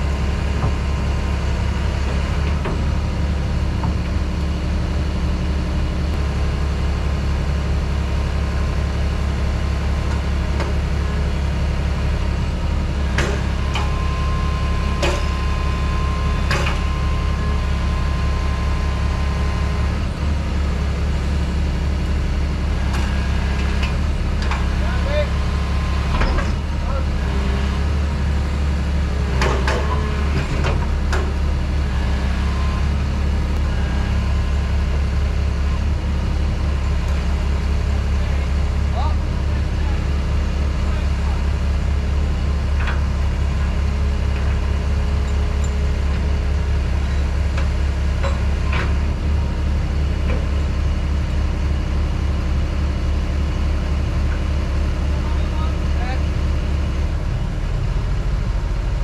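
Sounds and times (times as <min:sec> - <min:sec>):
diesel engine under load: 0:00.0 - 0:59.0.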